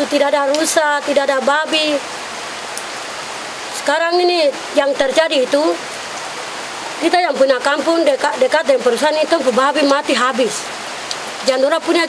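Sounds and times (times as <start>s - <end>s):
woman speaking: 0.0s - 2.0s, 3.8s - 5.8s, 7.0s - 10.7s, 11.4s - 12.0s
steady background hiss: 0.0s - 12.0s.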